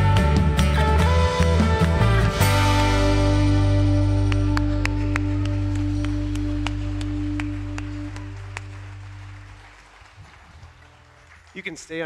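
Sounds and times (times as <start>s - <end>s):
hand claps: 0.0s - 2.5s, 4.1s - 12.0s
live band closing chord: 0.0s - 9.7s.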